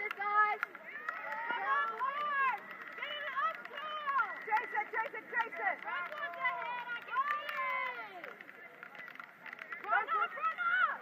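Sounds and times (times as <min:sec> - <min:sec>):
people shouting: 0:00.0 - 0:08.4, 0:09.8 - 0:11.0.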